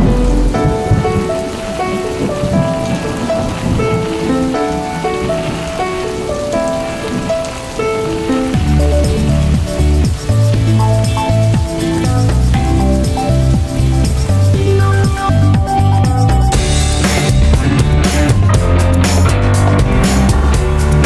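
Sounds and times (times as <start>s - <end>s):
melodic background music: 0.0s - 21.0s
rain falling on puddles: 0.0s - 21.0s
deep bass line: 8.6s - 21.0s.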